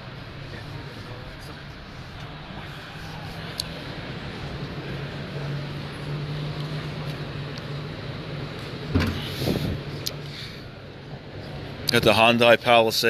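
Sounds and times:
distant crowd noise: 0.0 - 13.0
steady low hum: 0.0 - 13.0
thump: 8.9 - 9.2.

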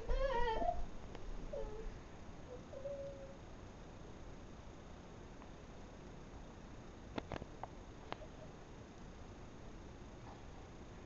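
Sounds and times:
recording hiss: 0.0 - 11.0.

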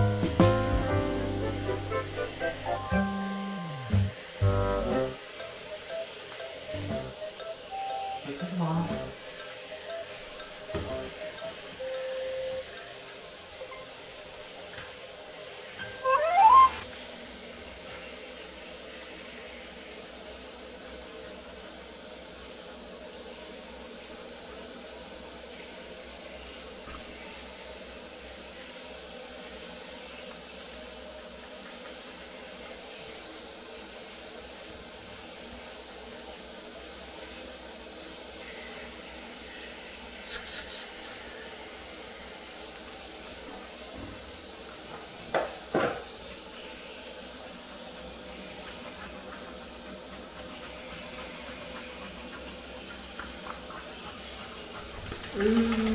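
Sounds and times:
steady low hiss: 0.0 - 55.9
dog whining: 15.8 - 16.9.

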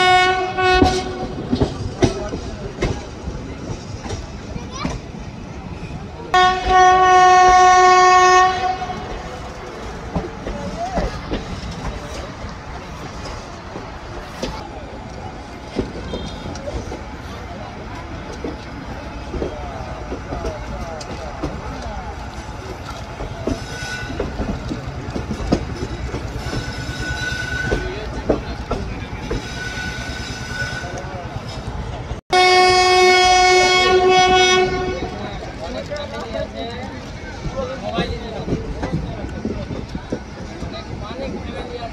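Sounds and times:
train horn blast: 0.0 - 1.4, 6.3 - 9.3, 32.3 - 35.3
train wheels rumbling and clattering: 0.0 - 41.9
high wheel squeal: 26.3 - 28.0, 29.3 - 31.2.

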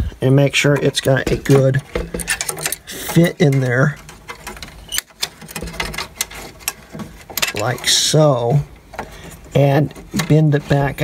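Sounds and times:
antenna clicking and scraping on metal: 0.0 - 11.0.

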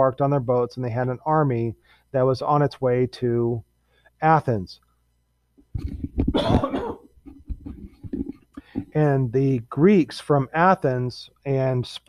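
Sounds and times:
throat sounds: 5.8 - 9.0
man coughing: 6.3 - 7.1.

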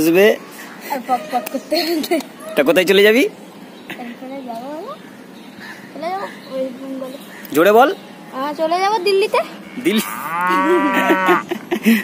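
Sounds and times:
cow mooing: 9.6 - 11.5.

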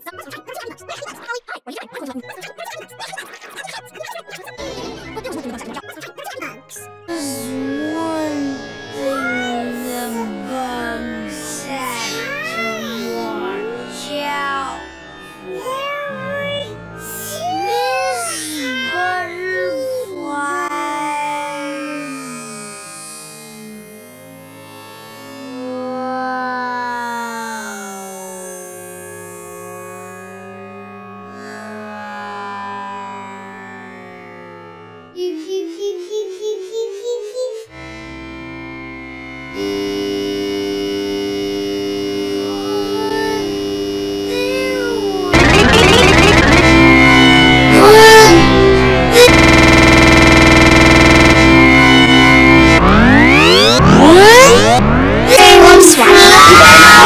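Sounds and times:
gliding pitch-bent tones: 4.3 - 20.9, 39.6 - 57.0.

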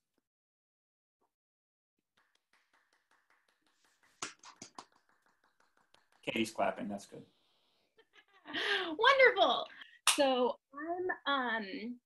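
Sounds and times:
hands clapping: 2.1 - 7.2, 10.0 - 10.3.

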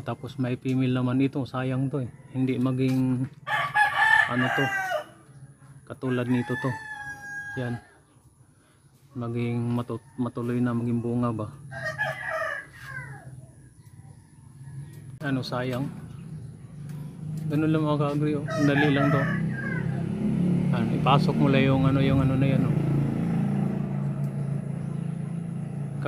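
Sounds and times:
rooster crowing: 3.4 - 5.3, 6.0 - 8.0, 11.5 - 15.2, 18.3 - 20.4
vehicle engine hum: 12.8 - 26.0.

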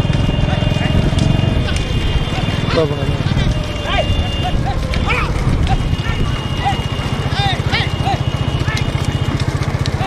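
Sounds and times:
carts rolling with fast rumble: 0.0 - 10.0
hooves clattering on tarmac: 0.0 - 10.0
people shouting: 0.0 - 10.0.

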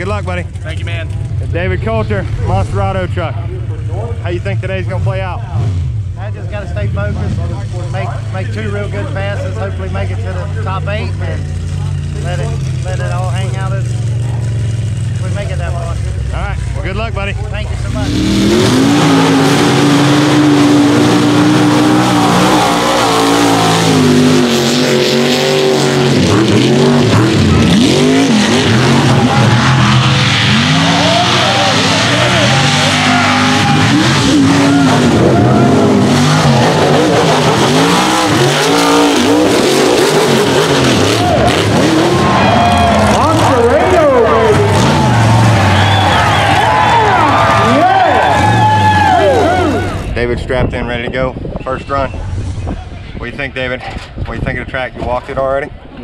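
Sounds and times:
tires churning through mud: 0.0 - 56.0
truck engines revving: 0.0 - 56.0.

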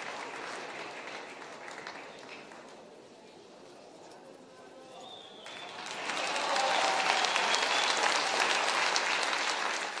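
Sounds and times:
audience applause: 0.0 - 2.6, 5.4 - 10.0.

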